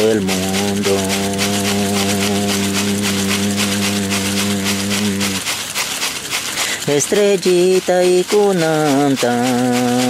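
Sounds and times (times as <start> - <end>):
man singing a long note: 0.0 - 5.3
rattle shaken rhythmically: 0.0 - 10.0.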